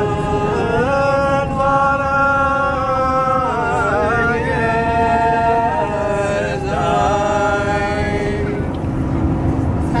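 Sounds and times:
unaccompanied group singing: 0:00.0 - 0:08.8
coach engine and road noise: 0:00.0 - 0:10.0.

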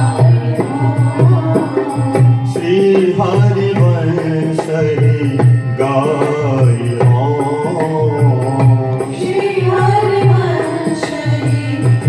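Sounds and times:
barrel drum beat: 0:00.0 - 0:12.0
harmonium: 0:00.0 - 0:12.0
person singing devotional song: 0:00.0 - 0:12.0.

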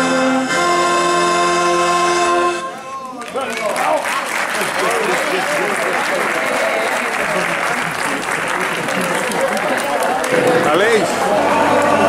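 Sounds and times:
accordion: 0:00.0 - 0:03.0
saxophones: 0:00.0 - 0:03.0.

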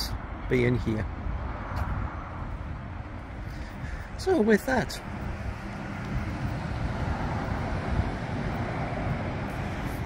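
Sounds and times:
traffic hum: 0:00.0 - 0:10.0
wind rumbling on microphone: 0:00.0 - 0:10.0.

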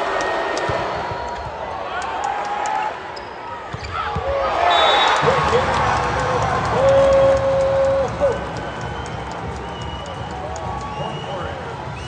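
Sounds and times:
crowd cheering: 0:00.0 - 0:03.2, 0:03.9 - 0:12.0.

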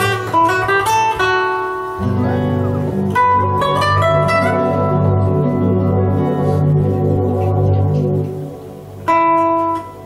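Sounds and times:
guitar plucking notes and chords: 0:00.0 - 0:10.0.

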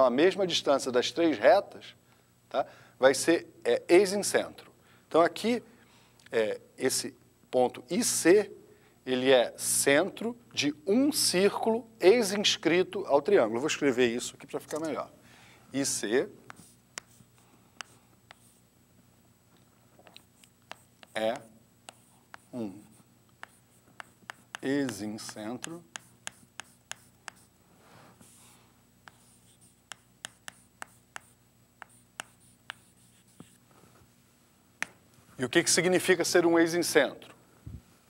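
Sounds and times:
chalk tapping on chalkboard: 0:16.4 - 0:18.6, 0:20.6 - 0:27.5, 0:29.0 - 0:33.6.

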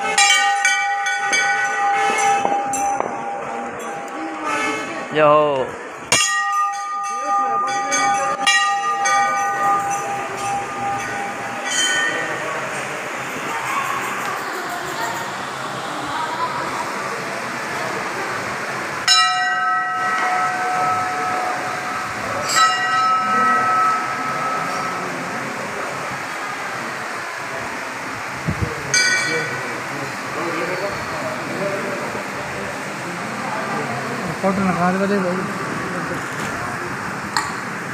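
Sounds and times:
temple bells struck by hand: 0:00.0 - 0:04.5, 0:06.1 - 0:12.9, 0:19.0 - 0:25.9, 0:28.9 - 0:29.7
murmur of a crowd: 0:00.0 - 0:37.9.

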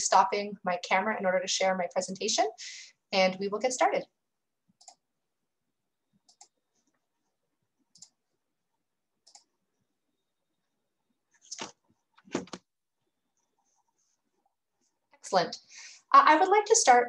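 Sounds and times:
computer mouse clicks: 0:04.8 - 0:05.0, 0:06.2 - 0:06.6, 0:07.9 - 0:08.2, 0:09.2 - 0:09.5.

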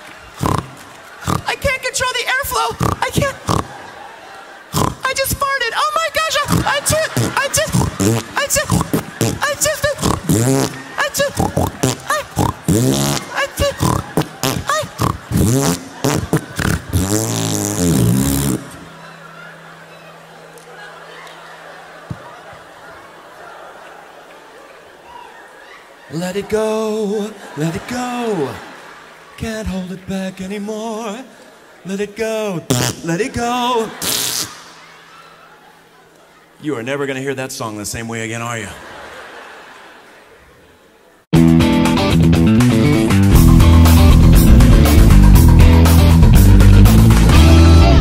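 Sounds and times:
man imitating a laugh: 0:00.4 - 0:01.6, 0:02.6 - 0:05.2, 0:06.2 - 0:24.2, 0:32.6 - 0:35.9.

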